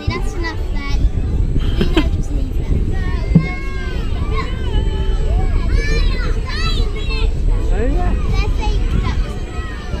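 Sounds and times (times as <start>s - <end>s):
children calling and chattering: 0.0s - 10.0s
wind rumble on microphone: 0.0s - 10.0s.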